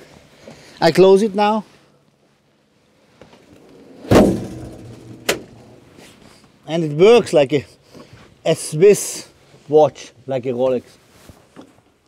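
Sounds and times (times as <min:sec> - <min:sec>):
trap door closing with metallic thud: 0:04.0 - 0:05.8.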